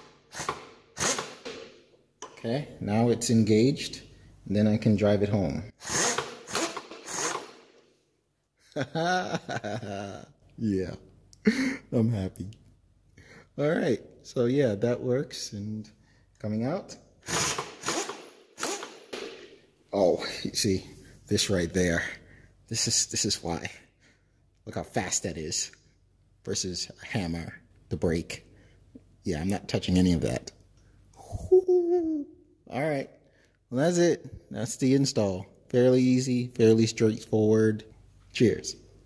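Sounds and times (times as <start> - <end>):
pneumatic air drive bursts: 0.0 - 1.6, 5.8 - 7.8, 17.2 - 19.3.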